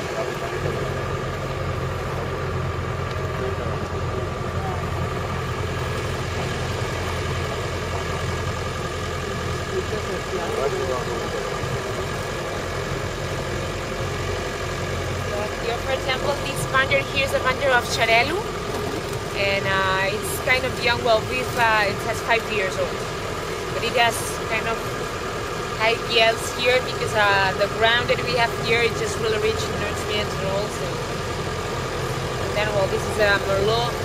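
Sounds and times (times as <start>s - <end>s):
utility vehicle engine running: 0.0s - 34.0s.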